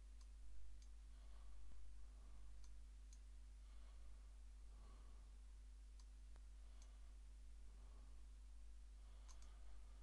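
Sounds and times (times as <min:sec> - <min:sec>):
low steady hum: 0:00.0 - 0:10.0
computer mouse clicks: 0:09.2 - 0:09.6.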